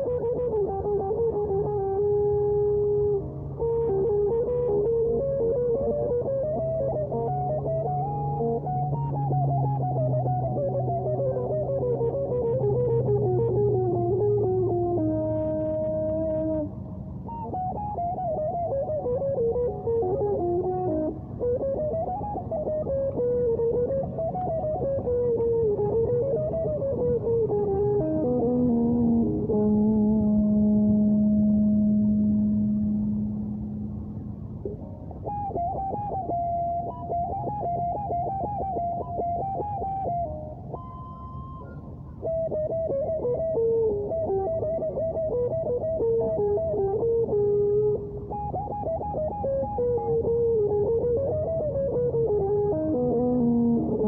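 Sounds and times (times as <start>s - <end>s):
electric guitar with effects: 0.0s - 54.0s.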